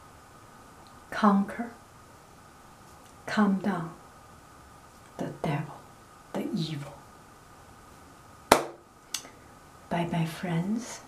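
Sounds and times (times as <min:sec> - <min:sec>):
sharp loud knock: 0:08.5 - 0:08.8.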